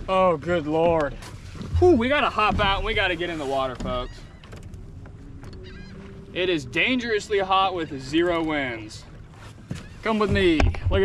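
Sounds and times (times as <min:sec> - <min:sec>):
bird calls: 0:01.6 - 0:10.8.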